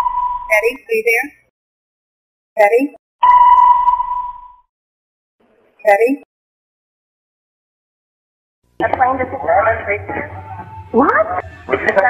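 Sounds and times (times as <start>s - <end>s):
electronic sonar ping: 0.0s - 0.6s, 3.2s - 4.7s.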